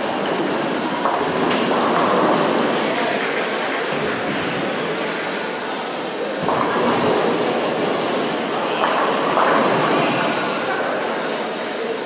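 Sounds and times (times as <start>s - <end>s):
bowling balls rolling: 0.1s - 5.2s.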